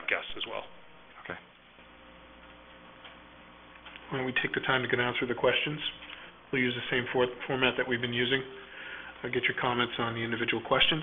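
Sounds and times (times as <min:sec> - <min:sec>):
faint electrical hum and hiss: 0:00.0 - 0:11.0.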